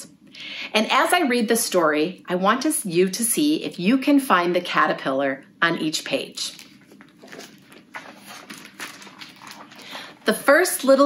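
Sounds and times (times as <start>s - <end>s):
book pages turning: 6.5s - 10.9s.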